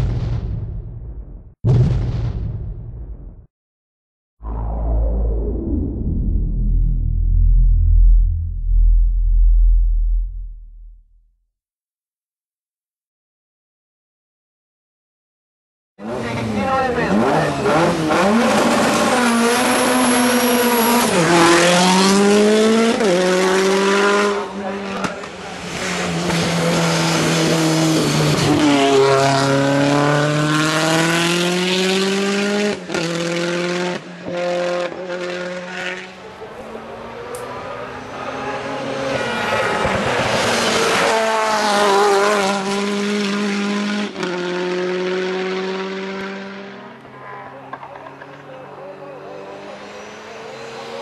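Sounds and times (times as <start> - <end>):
rally car engine at full throttle: 16.0 - 51.0.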